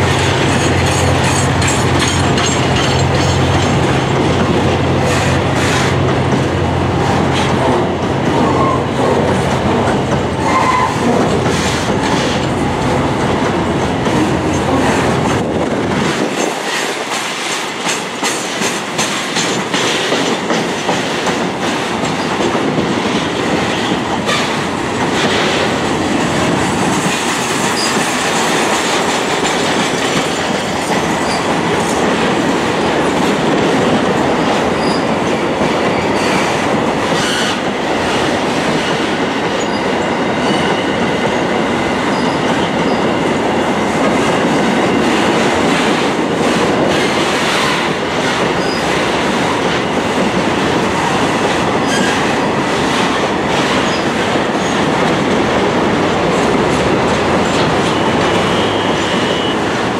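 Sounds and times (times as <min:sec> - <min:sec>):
clickety-clack over rail joints: 0:00.0 - 0:59.9
train wheels rolling on rails: 0:00.0 - 0:59.9.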